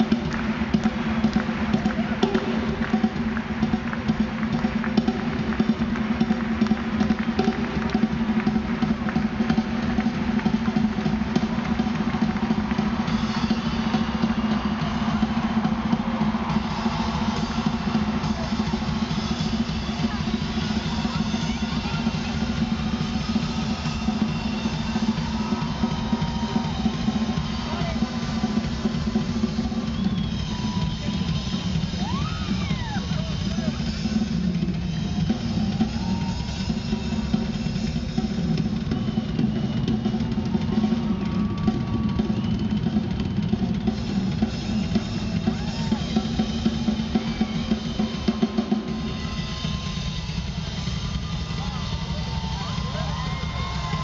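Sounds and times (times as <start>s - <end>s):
live drum solo: 0.0s - 54.0s.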